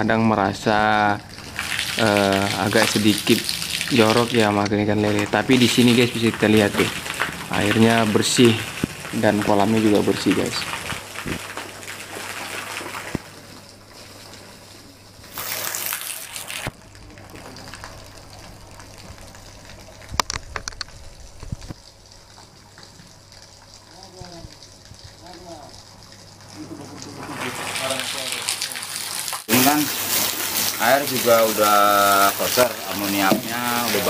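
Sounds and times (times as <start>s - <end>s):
water gushing from pipe: 0.7s - 34.0s
sharp knocks: 33.2s - 33.6s.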